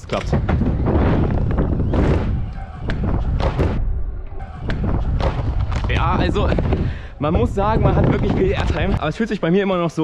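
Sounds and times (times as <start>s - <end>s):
wind buffeting microphone: 0.0s - 4.0s, 4.6s - 9.4s.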